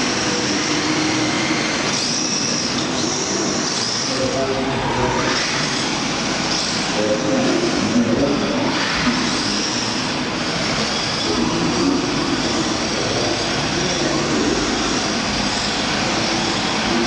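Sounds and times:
electric motor whine: 0.0 - 17.0.

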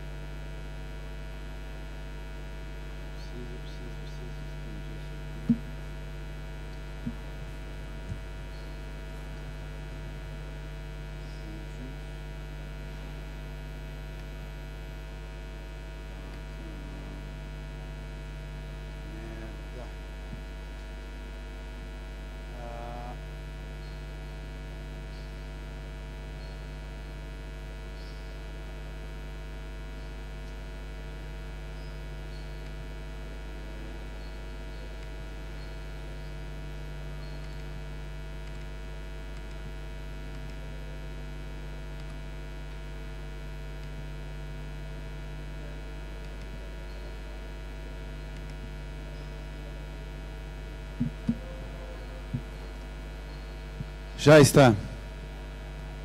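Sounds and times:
electrical mains hum: 0.0 - 56.0.

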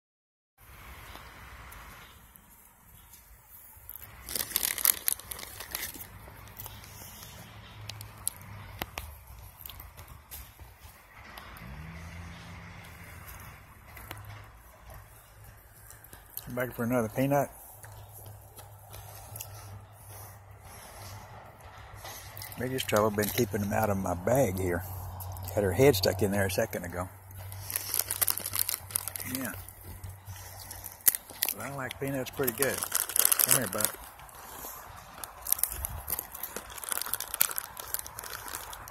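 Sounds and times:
bag of peanuts crinkling: 3.8 - 10.1, 22.4 - 24.5, 25.3 - 38.9.

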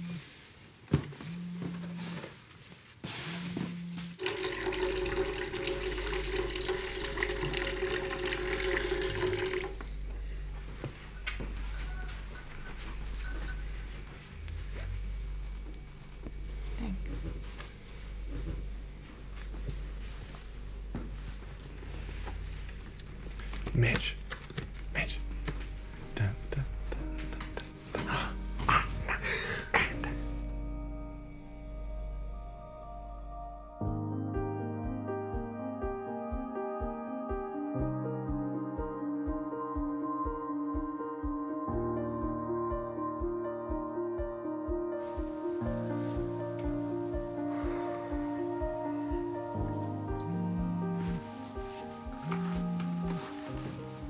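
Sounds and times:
background music with held note: 3.0 - 54.0
tap water running into sink: 4.2 - 9.8.

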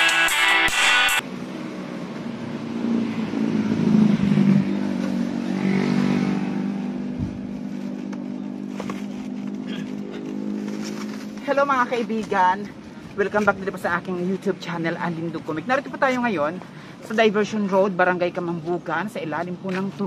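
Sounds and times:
road traffic: 0.0 - 20.0
vehicle engine humming: 0.6 - 20.0.

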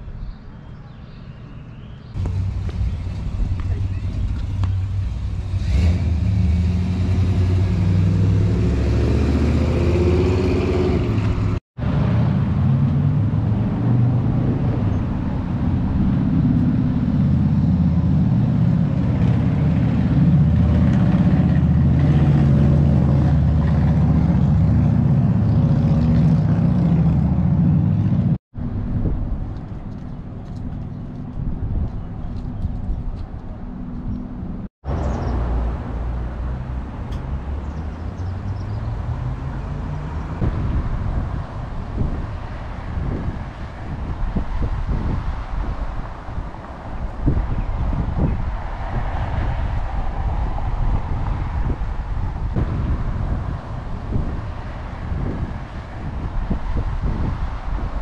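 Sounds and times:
vehicle engines running: 2.2 - 58.0.

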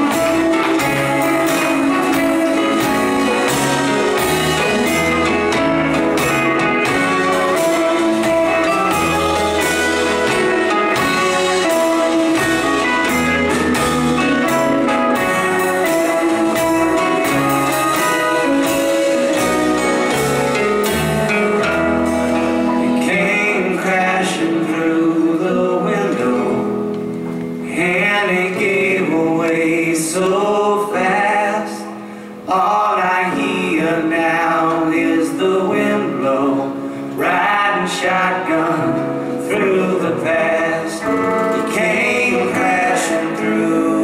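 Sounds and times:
drum kit: 0.0 - 31.2, 36.7 - 44.0
acoustic guitar: 0.0 - 44.0
electric guitar: 0.0 - 44.0
live rock band playing: 0.0 - 44.0
men singing in harmony: 23.0 - 26.8, 27.7 - 44.0.

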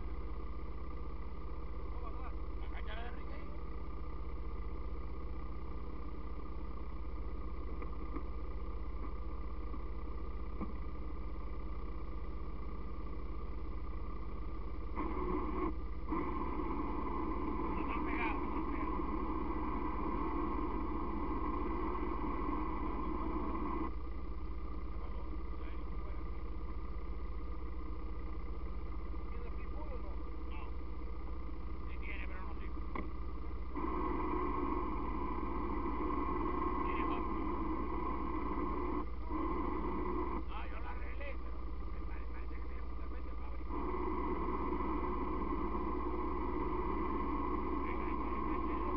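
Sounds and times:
atv engines idling: 0.0 - 48.9.

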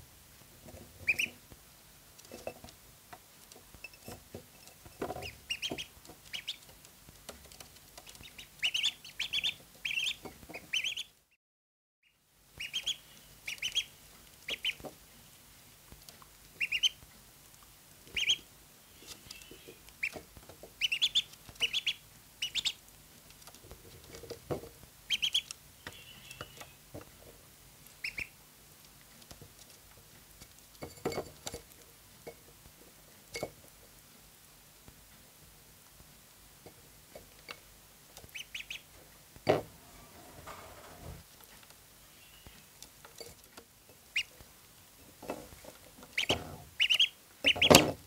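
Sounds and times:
ducklings peeping: 0.9 - 1.4, 4.8 - 6.8, 7.6 - 11.2, 12.5 - 15.3, 16.5 - 17.1, 18.0 - 24.0, 25.0 - 26.9, 27.9 - 28.5, 38.2 - 39.2, 42.0 - 42.8, 43.9 - 44.5, 46.0 - 48.0.

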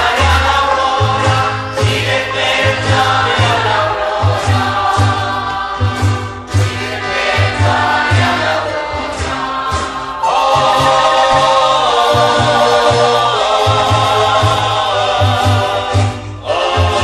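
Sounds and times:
church choir singing a hymn: 0.0 - 17.0
marimba: 0.0 - 17.0.

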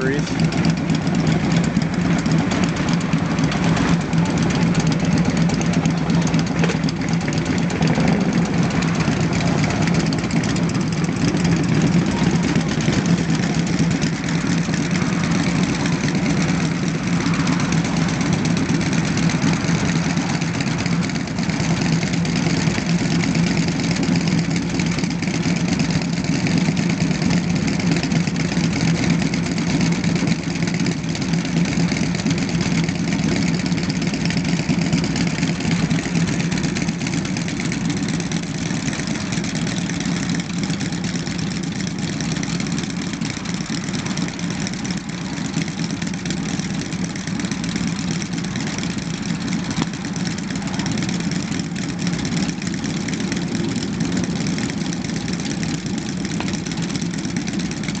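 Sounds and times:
motorcycles idling: 0.0 - 58.0.

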